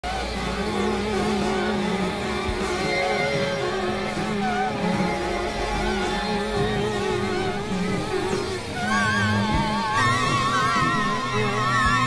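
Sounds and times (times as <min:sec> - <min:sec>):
experimental electronic drone music: 0:00.0 - 0:12.0.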